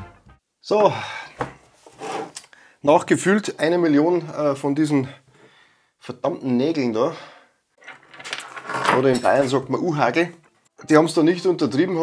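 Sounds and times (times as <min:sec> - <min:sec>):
man talking: 0:00.6 - 0:01.3, 0:02.8 - 0:05.2, 0:06.0 - 0:07.3, 0:08.9 - 0:12.0.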